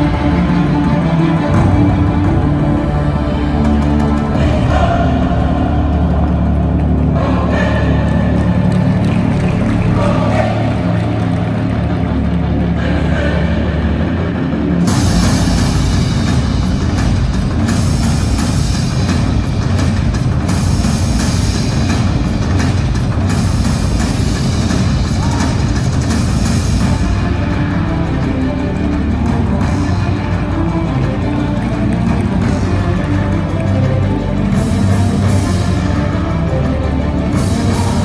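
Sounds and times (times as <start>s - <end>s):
loud music: 0.0s - 38.0s.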